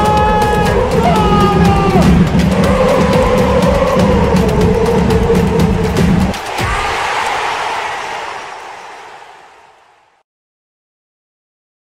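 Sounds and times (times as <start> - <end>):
broad wash of noise: 2.4 - 10.2.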